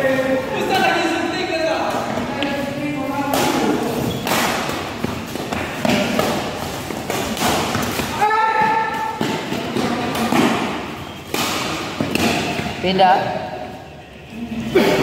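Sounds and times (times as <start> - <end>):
racket hitting shuttlecock: 3.3 - 12.8.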